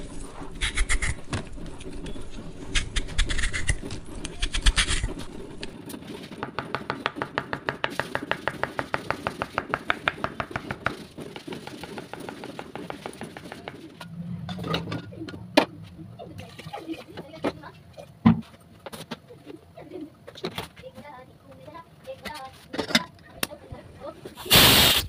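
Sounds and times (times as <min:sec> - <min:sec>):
knife scraping peel: 0:00.2 - 0:01.3, 0:02.6 - 0:05.7.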